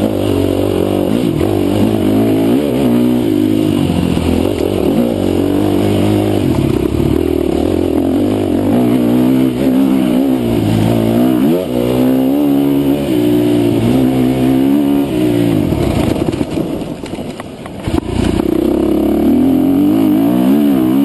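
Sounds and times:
dirt bike engine revving: 0.0 - 16.8, 17.8 - 21.0.

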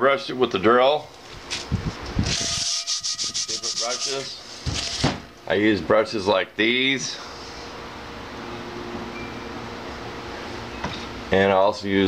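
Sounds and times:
faint hum: 1.1 - 12.0.

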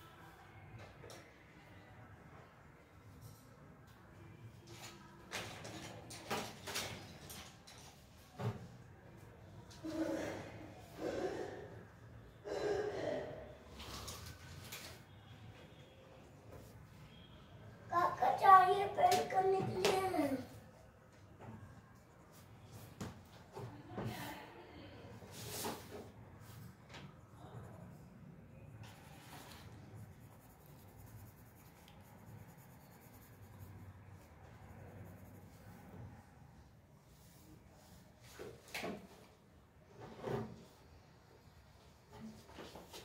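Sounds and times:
pencil scratching on paper: 28.9 - 36.1.

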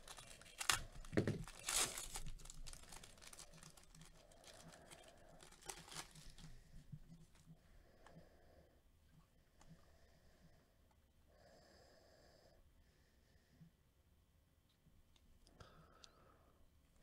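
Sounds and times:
foil wrapper tearing and crinkling: 0.0 - 6.5.

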